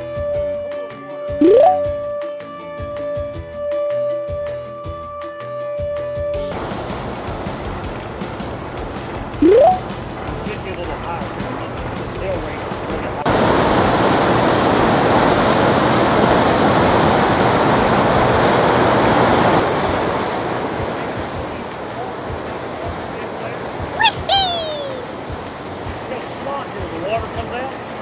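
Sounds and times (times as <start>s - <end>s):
brief falling pitched sound: 1.4s - 1.9s
water rushing in rapids: 11.4s - 28.0s.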